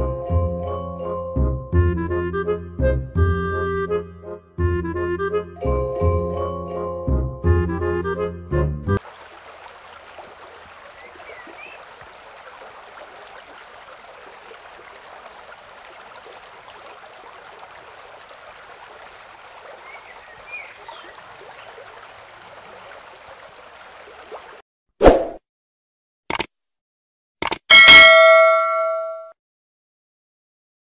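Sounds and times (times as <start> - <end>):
stream of running water: 9.0 - 24.6.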